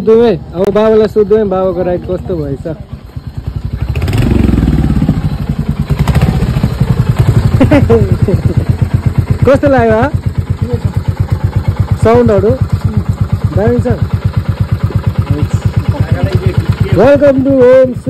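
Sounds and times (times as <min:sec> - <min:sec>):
voices: 0:00.0 - 0:04.2, 0:05.0 - 0:18.0
motorcycle engine idling: 0:00.0 - 0:18.0.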